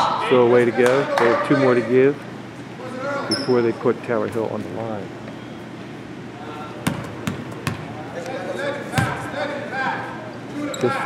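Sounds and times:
basketball bouncing on wooden floor: 6.8 - 7.9.

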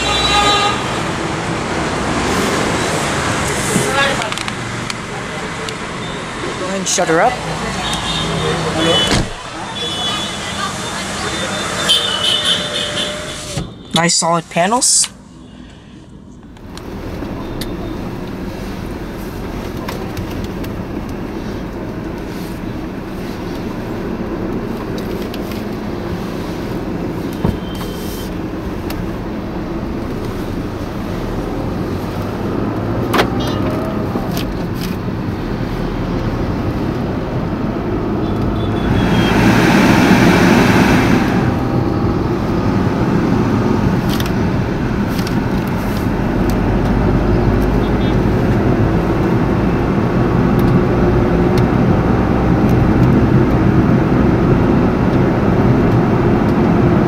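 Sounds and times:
car engine: 0.0 - 57.0
road noise: 0.0 - 57.0
loud rush: 7.0 - 15.4, 38.6 - 44.0.

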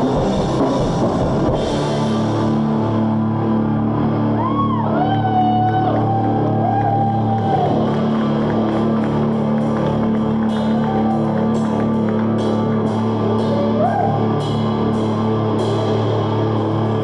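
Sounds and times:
cymbals and drums: 0.0 - 2.6
live rock band playing: 0.0 - 4.4.

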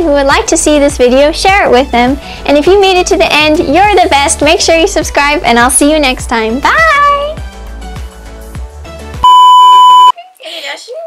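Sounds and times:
background music with a beat: 0.0 - 9.3
steady test-tone beep: 9.2 - 10.1.

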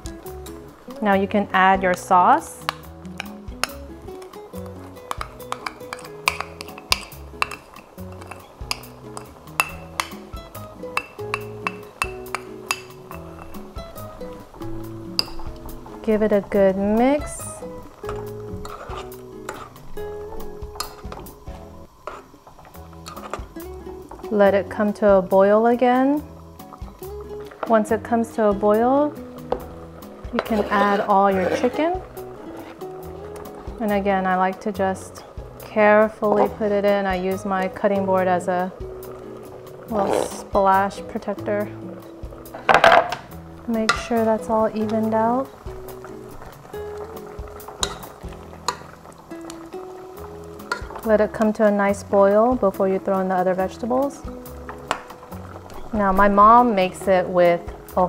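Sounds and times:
background music: 0.0 - 58.0
metal spoon scraping ceramic bowl: 18.6 - 19.8, 30.4 - 31.9.

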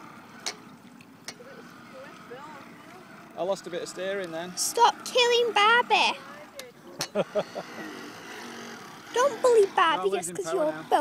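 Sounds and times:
model boat motors whining: 0.0 - 11.0.

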